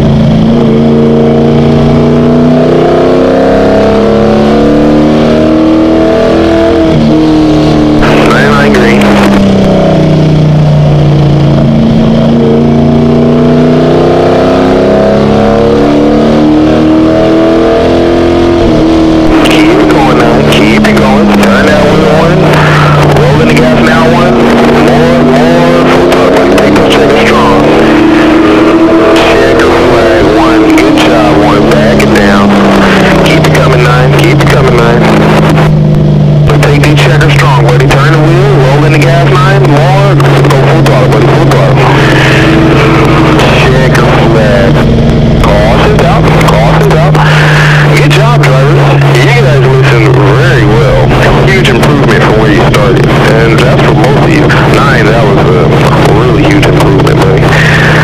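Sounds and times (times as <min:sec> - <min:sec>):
race car engine: 0:00.0 - 0:58.0.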